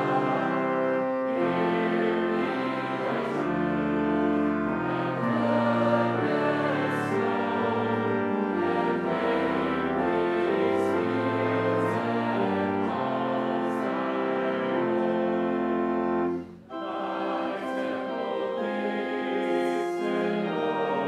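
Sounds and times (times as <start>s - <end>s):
congregation singing a hymn: 0.0s - 21.0s
instrumental accompaniment: 0.0s - 21.0s.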